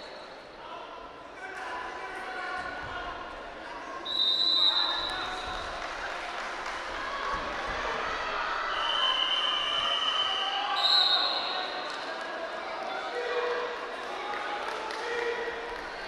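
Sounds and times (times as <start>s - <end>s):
long shrill whistle: 4.1s - 5.1s, 8.7s - 11.7s.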